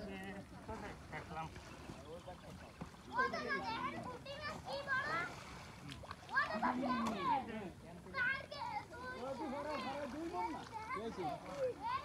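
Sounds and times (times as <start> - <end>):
voices chattering and calling: 0.0 - 12.0.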